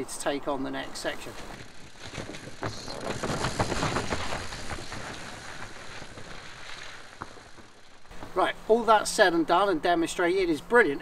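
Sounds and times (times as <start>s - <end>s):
bike tyres crunching on dirt: 0.2s - 10.2s
bike knocks and rattles: 1.3s - 8.5s.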